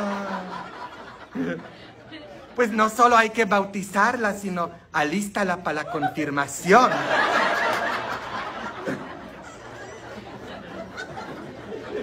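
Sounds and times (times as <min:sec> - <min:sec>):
people laughing: 0:00.0 - 0:03.2, 0:05.6 - 0:12.0.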